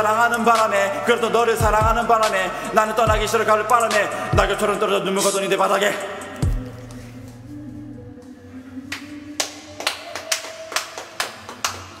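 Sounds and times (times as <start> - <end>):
hand clapping: 8.9 - 12.0.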